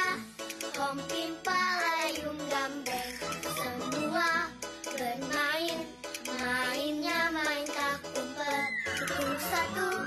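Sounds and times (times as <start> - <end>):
backing music track: 0.0 - 10.0
girls singing together: 3.6 - 10.0.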